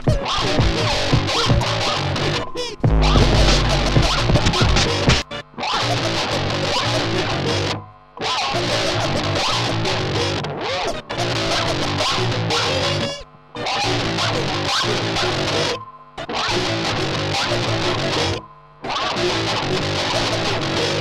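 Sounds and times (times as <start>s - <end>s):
drums: 0.0s - 1.9s, 2.8s - 5.3s
distorted electric guitar: 0.0s - 21.0s
turntable scratching: 0.0s - 21.0s
bass guitar: 0.1s - 7.8s, 8.6s - 13.2s, 13.8s - 15.8s, 16.4s - 18.4s, 19.0s - 21.0s.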